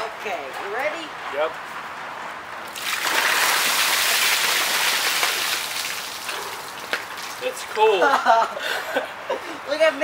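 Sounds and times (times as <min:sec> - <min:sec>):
water pouring and splashing: 0:02.6 - 0:07.8.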